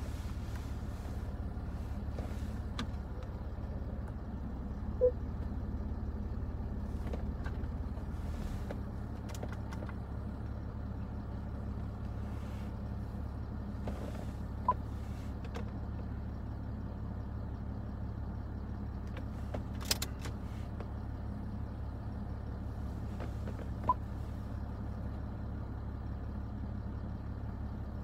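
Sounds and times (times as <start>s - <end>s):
car engine idling: 0.0s - 28.0s
short beep: 5.0s - 5.2s.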